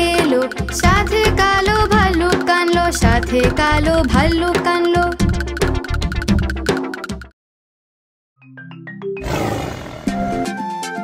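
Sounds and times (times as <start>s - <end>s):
upbeat children's song: 0.0s - 6.4s
cartoon lion roar: 9.2s - 10.3s.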